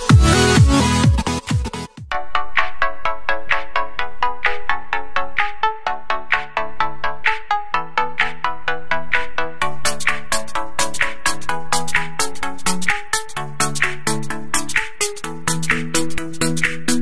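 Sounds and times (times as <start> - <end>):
electronic music with bell-like notes: 0.0 - 17.0.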